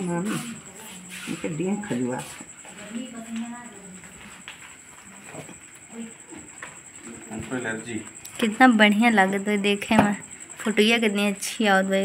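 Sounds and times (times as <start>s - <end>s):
high-pitched whine: 0.0s - 3.9s.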